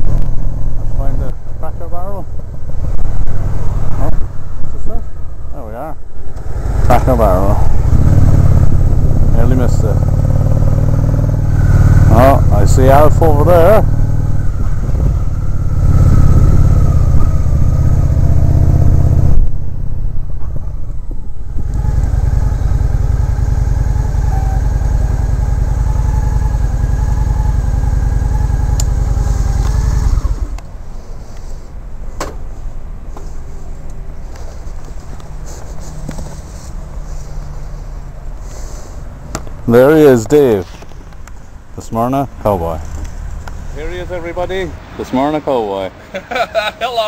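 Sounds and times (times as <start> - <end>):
motorcycle engine running: 6.3 - 30.6.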